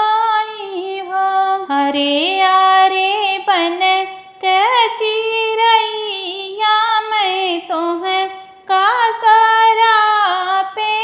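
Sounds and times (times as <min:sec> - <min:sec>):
woman singing folk song: 0:00.0 - 0:11.0.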